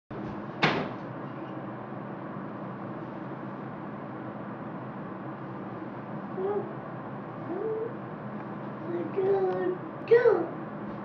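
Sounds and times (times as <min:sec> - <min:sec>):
room noise: 0:00.1 - 0:11.0.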